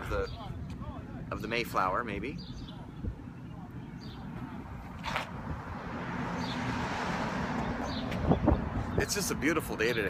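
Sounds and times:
outdoor street noise: 0.0s - 10.0s.

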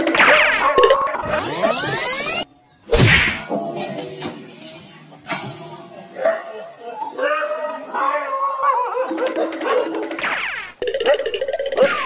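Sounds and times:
loud crack with falling tone: 0.0s - 3.5s, 10.1s - 10.8s.

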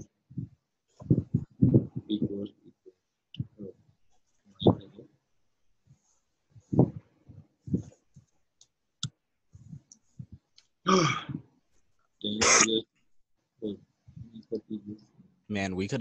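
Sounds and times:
person speaking: 0.0s - 2.8s, 3.4s - 3.7s, 4.6s - 5.0s, 12.2s - 12.8s, 13.6s - 16.0s
wordless vocal sounds: 0.0s - 2.8s, 4.6s - 5.0s, 12.2s - 12.8s, 13.6s - 16.0s.

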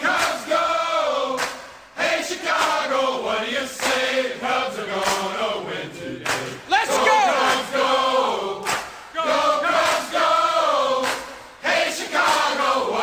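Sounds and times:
group of voices singing: 0.0s - 13.0s.

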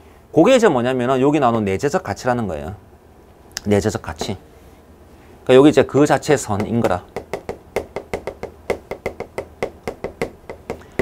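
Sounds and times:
chalk tapping and scratching on board: 6.6s - 11.0s.

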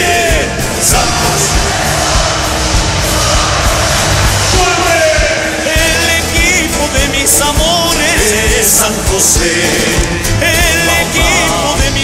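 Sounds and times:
bass drum beat: 0.0s - 12.0s
brass band playing: 0.0s - 12.0s.

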